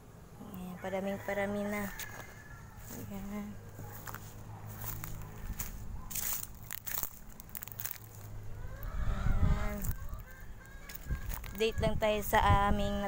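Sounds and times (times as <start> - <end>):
chicken calling: 8.3 - 12.6.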